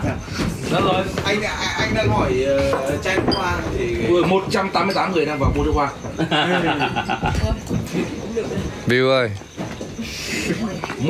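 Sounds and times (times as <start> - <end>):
people talking: 0.0 - 9.4
burst of laughter: 6.2 - 7.5.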